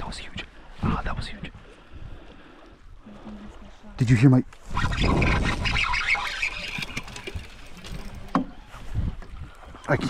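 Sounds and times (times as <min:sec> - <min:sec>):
water rushing around boat: 0:02.1 - 0:10.0.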